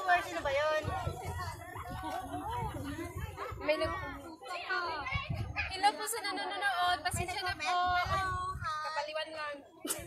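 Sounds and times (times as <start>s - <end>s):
women chattering excitedly: 0.0s - 10.0s.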